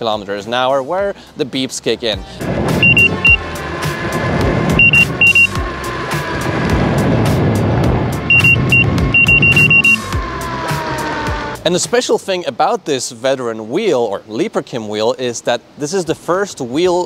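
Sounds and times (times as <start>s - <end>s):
wind and tyre noise: 2.2s - 11.8s
high-pitched alarm beeps: 2.8s - 3.4s, 4.8s - 5.6s, 8.3s - 10.1s.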